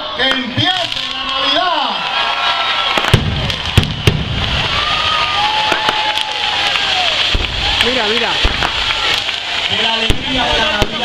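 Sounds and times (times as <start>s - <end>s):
pyrotechnic fountains hissing: 0.4s - 11.0s
sharp cracks: 2.9s - 11.0s.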